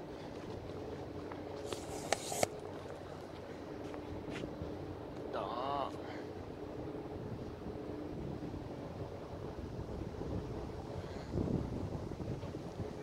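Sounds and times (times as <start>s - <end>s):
faint city background noise: 0.0s - 13.0s
steady low hum: 0.0s - 13.0s
wind buffeting microphone: 6.4s - 13.0s.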